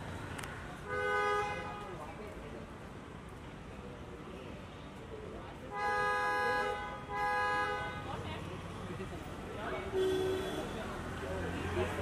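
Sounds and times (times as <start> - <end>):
low street noise: 0.0 - 12.0.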